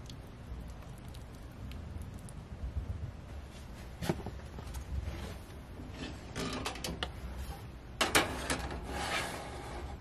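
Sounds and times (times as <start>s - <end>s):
oven door hinge creaking: 6.4s - 7.1s.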